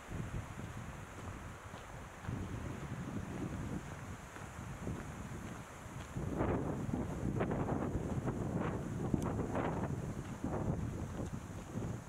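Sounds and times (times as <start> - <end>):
footsteps crunching on dirt: 0.0 - 12.0
wind buffeting microphone: 0.0 - 12.0.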